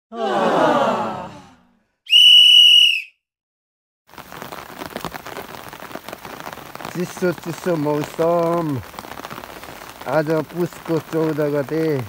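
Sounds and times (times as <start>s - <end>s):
loud whistle tone: 2.1s - 3.3s
rain hissing: 4.1s - 12.0s.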